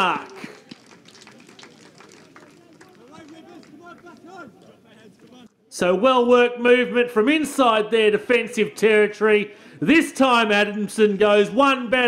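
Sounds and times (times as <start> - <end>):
distant players shouting: 2.3 - 5.6.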